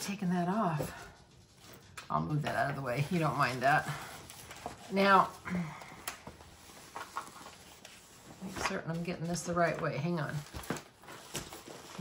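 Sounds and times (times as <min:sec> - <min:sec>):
paper rustling: 0:01.2 - 0:12.0.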